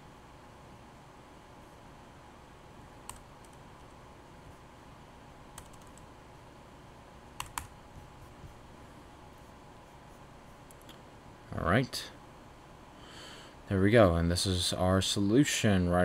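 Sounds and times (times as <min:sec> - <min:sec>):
faint hum: 0:00.0 - 0:16.0
keyboard keys clicking: 0:05.6 - 0:06.1, 0:07.4 - 0:07.7.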